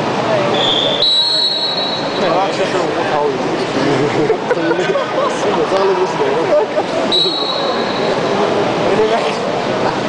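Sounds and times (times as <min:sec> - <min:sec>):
voices in a hall: 0:00.0 - 0:10.0
long high whistle blast: 0:00.6 - 0:02.1.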